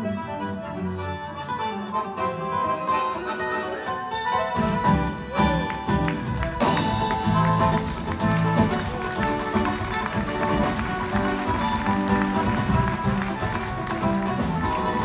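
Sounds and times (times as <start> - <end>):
flamenco acoustic guitar: 1.4 - 15.0.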